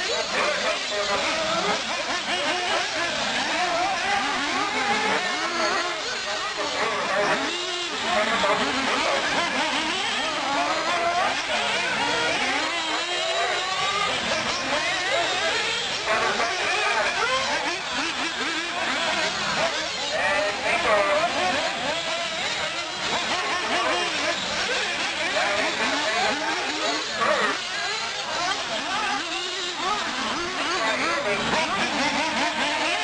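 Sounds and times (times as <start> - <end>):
people talking: 0.0 - 33.0
rc buggy motors revving: 0.0 - 33.0.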